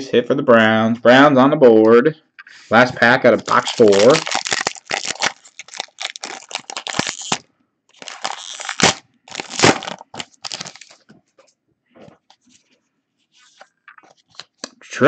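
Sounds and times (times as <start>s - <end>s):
foil wrapper tearing and crinkling: 3.4s - 7.4s, 8.0s - 11.0s.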